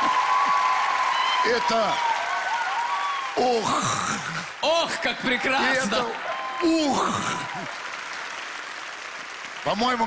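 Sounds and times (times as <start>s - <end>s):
studio audience applauding: 0.0s - 10.0s.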